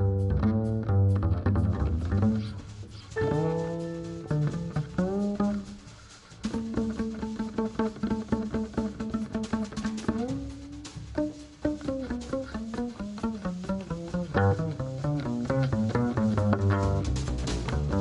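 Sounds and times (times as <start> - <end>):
double bass plucked jazz notes: 0.0 - 18.0.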